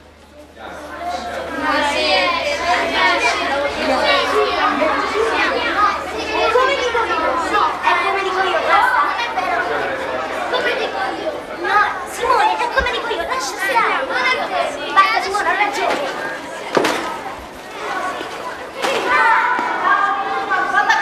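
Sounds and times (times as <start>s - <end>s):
schoolchildren chattering: 0.0s - 21.0s.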